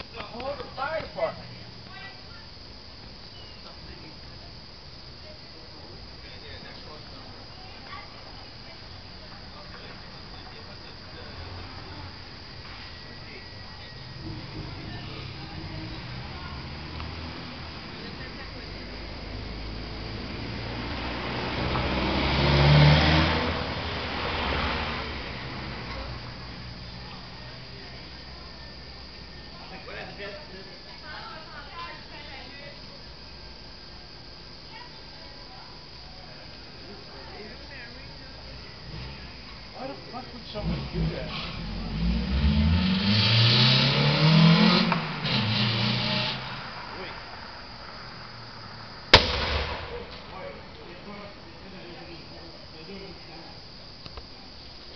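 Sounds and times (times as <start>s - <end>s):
raised wordless voices: 0.0s - 20.9s
motor vehicle driving past: 13.9s - 18.3s, 19.0s - 26.4s, 40.5s - 51.2s
sharp bang from burning car: 49.1s - 50.4s.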